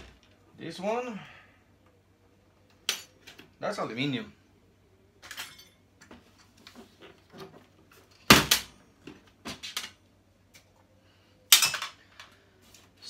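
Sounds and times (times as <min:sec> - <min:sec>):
clicks and knocks of parts: 0:05.2 - 0:10.9, 0:11.5 - 0:12.9.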